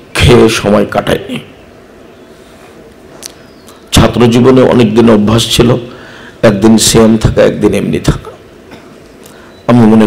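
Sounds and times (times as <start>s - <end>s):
man speaking into microphone: 0.0s - 1.6s, 3.9s - 8.5s, 9.6s - 10.0s
low background noise: 0.0s - 10.0s.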